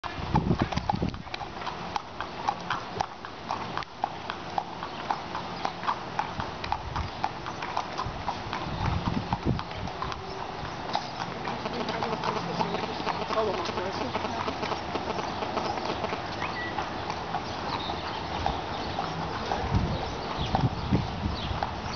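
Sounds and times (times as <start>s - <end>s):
horse hooves on pavement: 0.0s - 21.9s.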